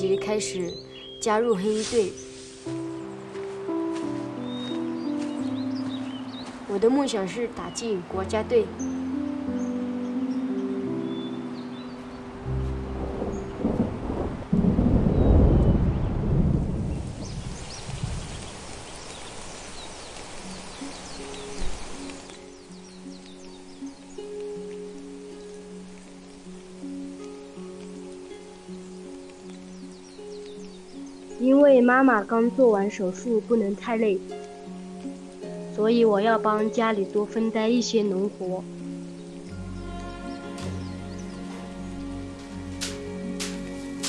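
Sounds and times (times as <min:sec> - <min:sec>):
soft music of held notes: 0:00.0 - 0:15.3, 0:19.1 - 0:44.0
steady rain: 0:00.1 - 0:44.0
thunder roll: 0:12.7 - 0:18.6.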